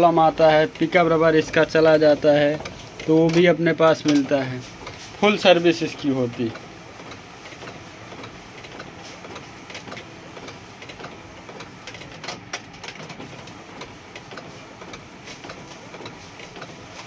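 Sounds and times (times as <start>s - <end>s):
paper feed ticks: 0.0s - 17.0s
printer carriage whirring: 0.0s - 17.0s.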